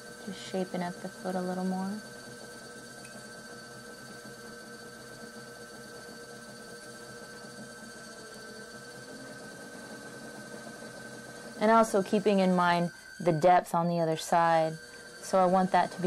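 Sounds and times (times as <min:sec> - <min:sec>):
pottery wheel motor hum and whine: 0:00.0 - 0:16.0.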